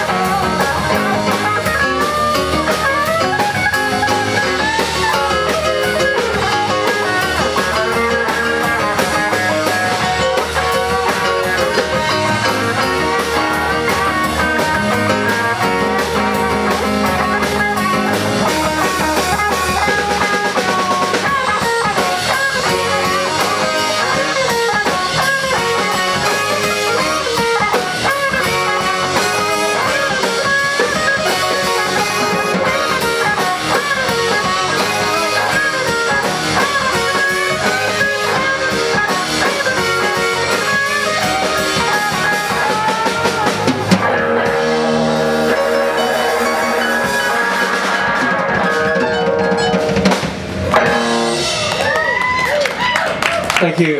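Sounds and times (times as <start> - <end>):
drum kit beat: 0.0 - 53.9
electric guitar lead lines: 0.0 - 53.9.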